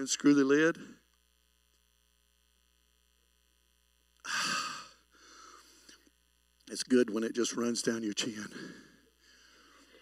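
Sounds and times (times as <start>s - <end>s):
man sighing loudly: 4.2s - 5.4s.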